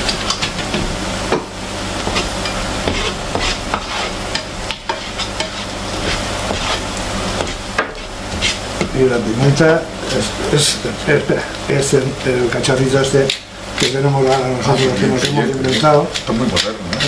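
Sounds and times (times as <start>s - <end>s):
spatula scraping and tapping pan: 0.0s - 9.0s, 13.2s - 17.0s
onion sizzling in a frying pan: 0.0s - 17.0s.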